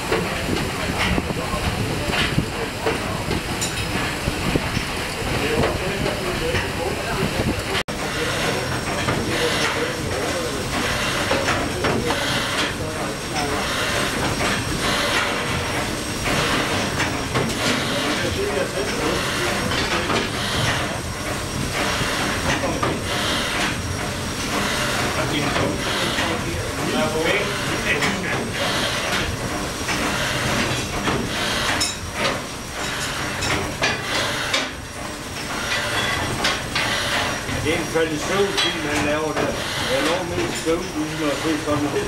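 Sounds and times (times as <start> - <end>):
steam engine running with knocks: 0.0 - 42.0.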